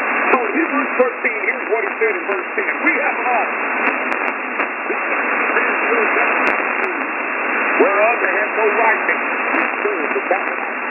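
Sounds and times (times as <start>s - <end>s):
radio hiss: 0.0s - 10.9s
preacher's voice on shortwave radio: 0.3s - 3.6s, 4.8s - 10.9s.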